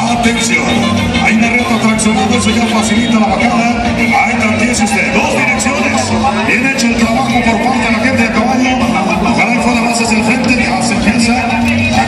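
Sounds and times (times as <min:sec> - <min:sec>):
large crowd noise: 0:00.0 - 0:12.0
man speaking over loudspeaker: 0:00.0 - 0:12.0.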